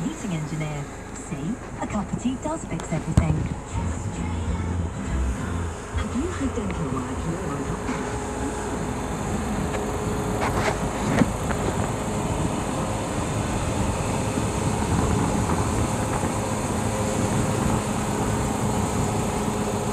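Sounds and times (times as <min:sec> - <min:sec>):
vehicle rumble: 0:00.0 - 0:19.9.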